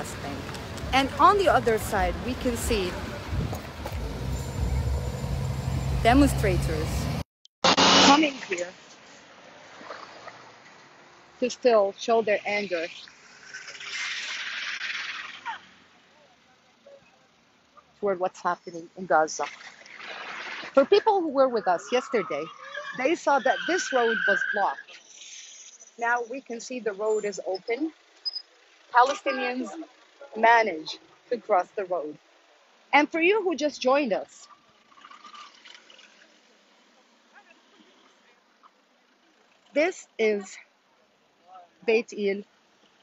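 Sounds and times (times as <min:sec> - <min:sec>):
vehicle driving past: 0:00.0 - 0:07.2, 0:12.9 - 0:16.2, 0:34.4 - 0:39.8
car passing road hiss: 0:12.9 - 0:16.2.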